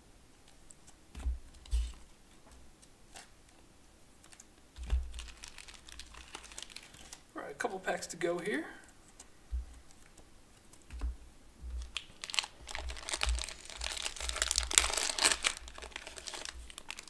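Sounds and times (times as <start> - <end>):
dull handling bumps: 1.1 - 2.6, 4.8 - 5.6, 9.4 - 9.9, 10.8 - 15.1
foil wrapper crinkling and tearing: 4.3 - 7.3, 11.8 - 17.0.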